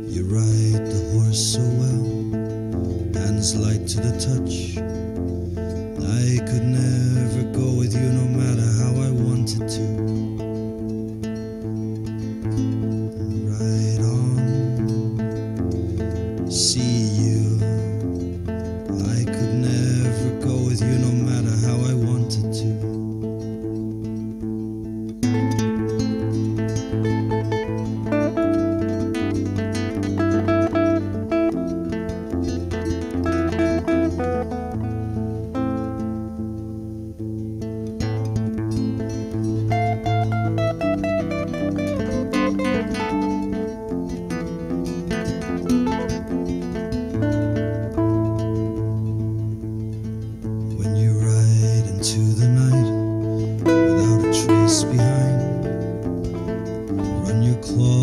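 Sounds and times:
acoustic guitar picking: 0:00.0 - 0:58.0.

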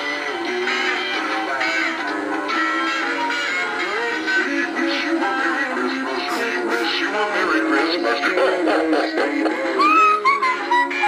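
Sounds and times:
christmas music with singing voice: 0:00.0 - 0:11.0.

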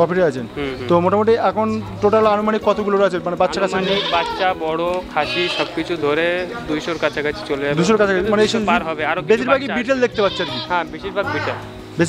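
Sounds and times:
goats bleating: 0:02.6 - 0:06.0, 0:10.0 - 0:11.6.

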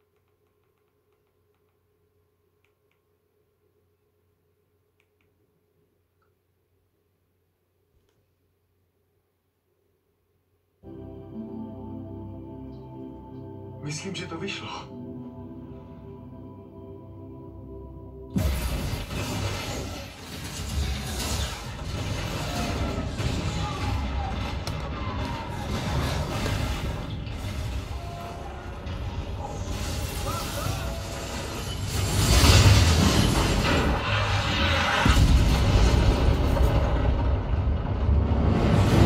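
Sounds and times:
film music: 0:10.8 - 0:39.0
explosion burst: 0:18.3 - 0:39.0
deep rumble: 0:32.1 - 0:39.0.

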